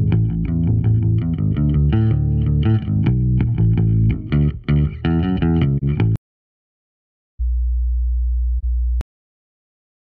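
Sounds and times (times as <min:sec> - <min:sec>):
low sine test tone: 0:07.4 - 0:09.0.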